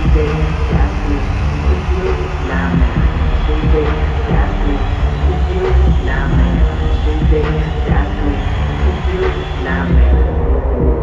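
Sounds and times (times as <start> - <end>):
live ballad through stadium speakers: 0.0 - 11.0.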